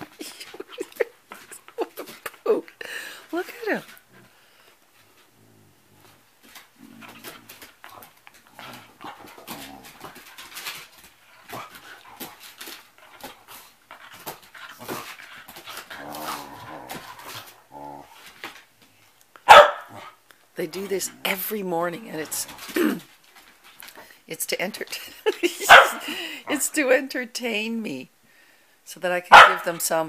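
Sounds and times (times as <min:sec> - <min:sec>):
dogs play-fighting: 0:00.0 - 0:24.2, 0:24.9 - 0:26.8
dog barking: 0:19.5 - 0:20.1, 0:25.7 - 0:26.0, 0:29.3 - 0:29.7.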